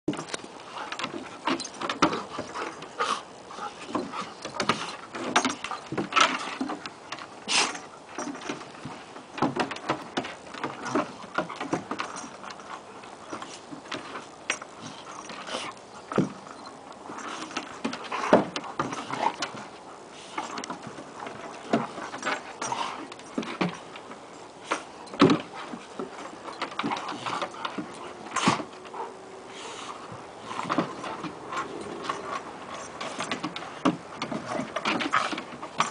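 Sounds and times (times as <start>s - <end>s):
dogs huffing breaths: 0.2s - 35.9s
dogs growling: 0.6s - 8.8s, 10.6s - 23.9s, 24.8s - 35.9s.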